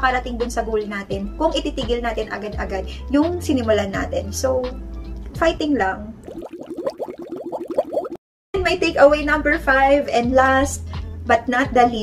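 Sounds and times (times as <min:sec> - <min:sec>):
drinking through a straw gurgling: 0:06.2 - 0:08.2.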